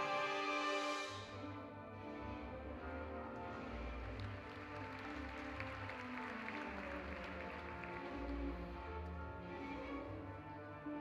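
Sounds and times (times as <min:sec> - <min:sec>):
symphony orchestra playing: 0:00.0 - 0:11.0.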